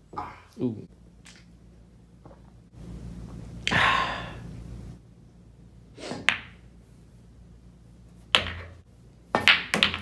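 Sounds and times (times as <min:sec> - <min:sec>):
pool balls clacking: 0:06.2 - 0:06.7, 0:08.3 - 0:10.0.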